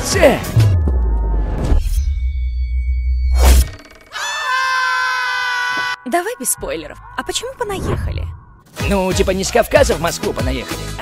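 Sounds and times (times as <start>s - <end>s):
person screaming: 4.1s - 6.1s.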